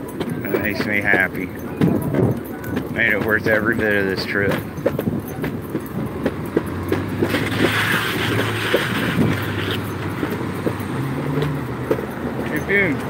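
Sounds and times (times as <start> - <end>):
dog gear jingling: 0.0 - 13.0
light footsteps ticking: 0.0 - 13.0
road traffic: 0.0 - 13.0
vehicle passing by: 5.6 - 13.0.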